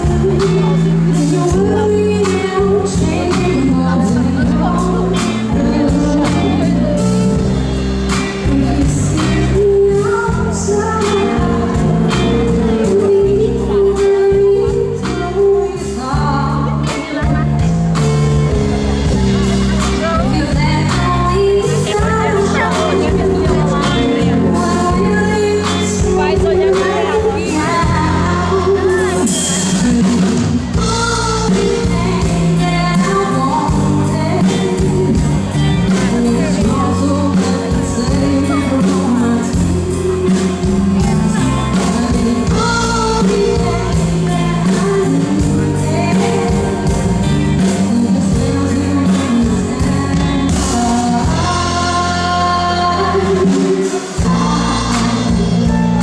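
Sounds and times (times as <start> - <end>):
band accompaniment: 0.0 - 56.0
woman singing into a microphone: 0.0 - 56.0.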